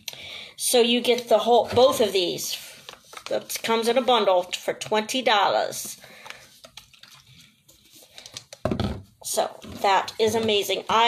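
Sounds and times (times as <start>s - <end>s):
plastic bottles rustling and clicking: 1.1s - 3.9s, 5.7s - 11.0s.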